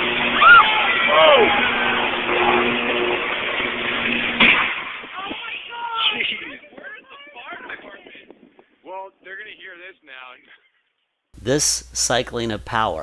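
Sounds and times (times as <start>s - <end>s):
bystanders crying out: 0.0s - 8.8s
sharp crack: 0.0s - 8.8s
electrical arc crackling: 0.0s - 9.9s
steady electrical buzzing hum: 0.0s - 13.0s.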